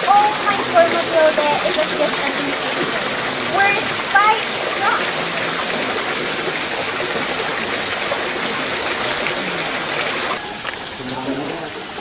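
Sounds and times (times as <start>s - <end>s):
water flowing: 0.0s - 12.0s.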